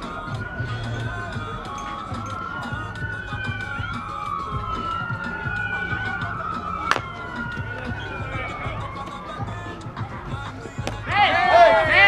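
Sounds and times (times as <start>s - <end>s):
siren wailing: 0.0s - 9.7s
bat hitting ball: 6.8s - 7.1s, 10.8s - 11.1s.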